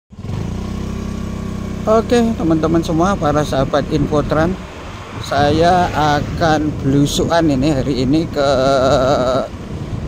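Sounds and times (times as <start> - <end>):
vehicle engine idling: 0.1 - 10.0
man speaking: 1.8 - 4.6, 5.2 - 9.5.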